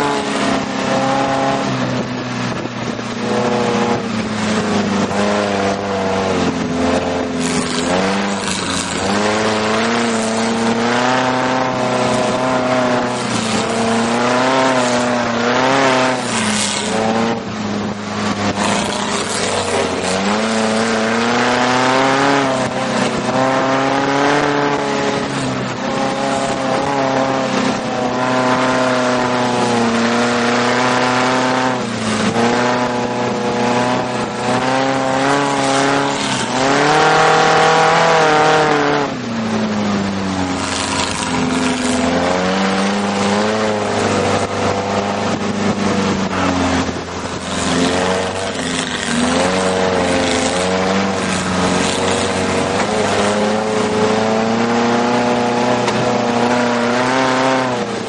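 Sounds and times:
dune buggy engine revving: 0.0s - 58.0s
wind and sand rushing: 0.0s - 58.0s.

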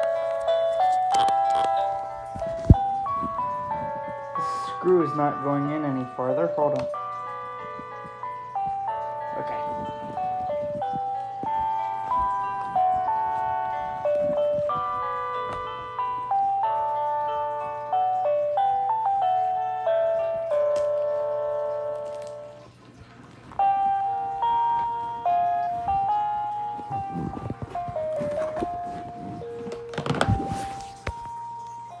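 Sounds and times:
handling knocks and rustles: 26.8s - 31.4s.

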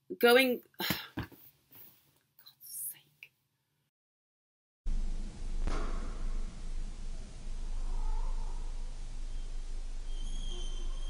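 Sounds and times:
woman whispering: 2.4s - 3.3s.

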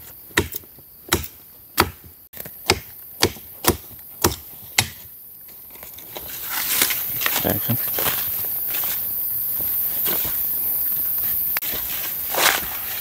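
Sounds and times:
machete chopping dry branch: 0.4s - 5.1s.

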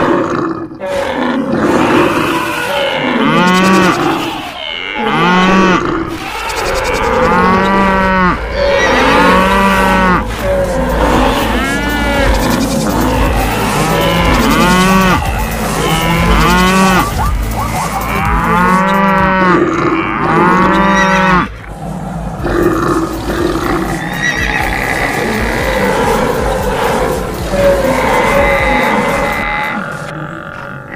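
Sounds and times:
animal calls: 0.0s - 30.9s
cattle mooing: 0.0s - 30.9s
low rumble: 6.0s - 19.6s, 20.7s - 30.1s.

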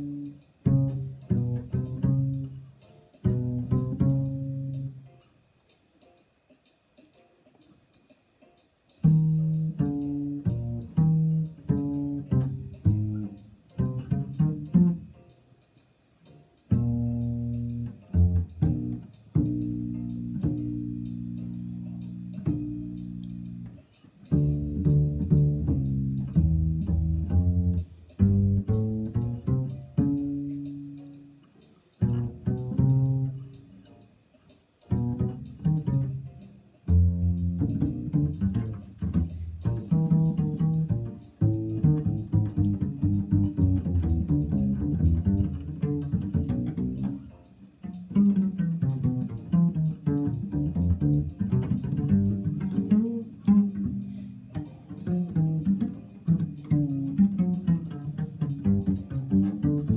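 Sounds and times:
plucked double bass: 0.0s - 5.1s, 9.0s - 15.3s, 16.7s - 34.0s, 34.8s - 59.9s.

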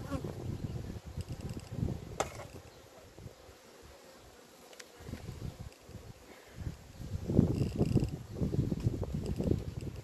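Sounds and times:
honeybees buzzing: 0.0s - 10.0s.

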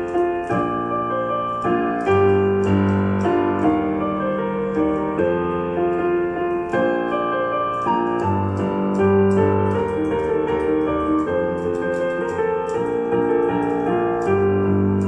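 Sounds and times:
digital piano pop song: 0.0s - 15.0s.

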